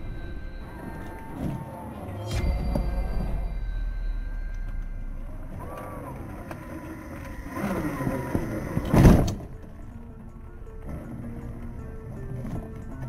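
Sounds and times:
electric motor whine: 5.9 - 9.3.

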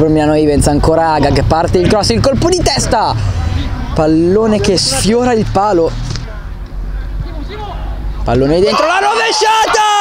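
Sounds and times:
low steady rumble: 0.0 - 8.7
distant players calling: 0.8 - 10.0.

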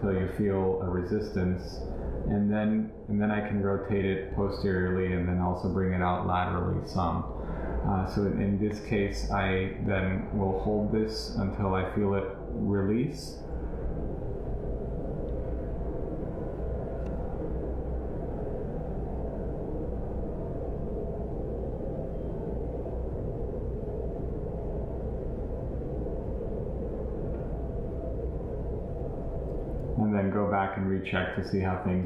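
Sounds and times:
low background rumble: 0.0 - 32.0.

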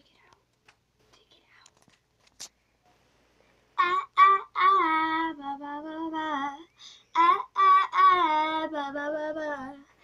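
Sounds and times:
girl singing unaccompanied: 3.8 - 10.0.

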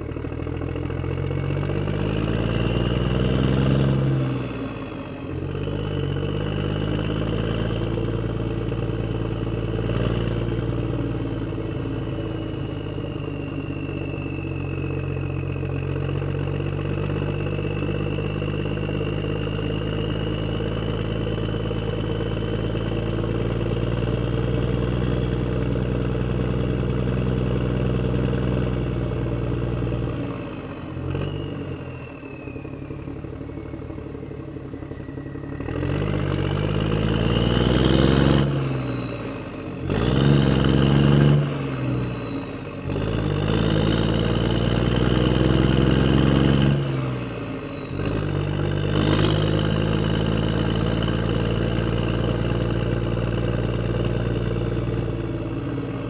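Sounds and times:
vehicle engine driving away: 0.0 - 56.0.

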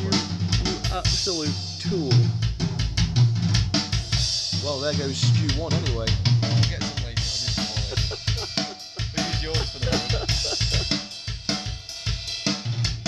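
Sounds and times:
bass drum thumps: 0.0 - 12.2.

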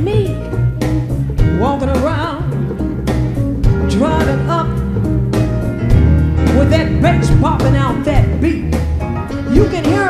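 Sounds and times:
double bass: 0.0 - 10.0.

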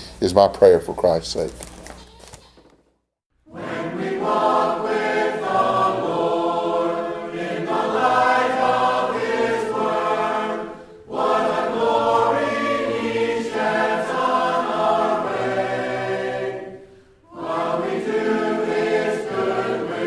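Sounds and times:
choir singing: 3.5 - 20.0.

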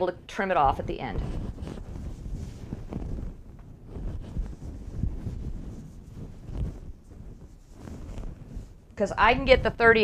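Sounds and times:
fabric rustling and flapping: 0.4 - 10.0
low rumble: 0.5 - 10.0.

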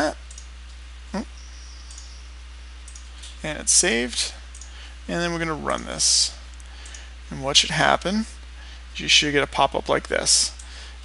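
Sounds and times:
low electrical hum and hiss: 0.0 - 11.0.

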